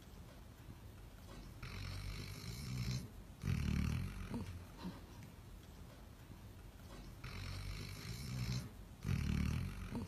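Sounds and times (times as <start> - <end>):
dog snoring: 1.4 - 4.7, 7.0 - 10.0.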